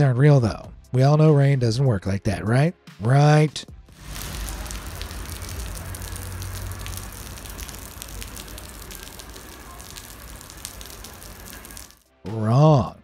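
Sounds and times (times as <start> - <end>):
rain pattering on asphalt: 3.9 - 12.0.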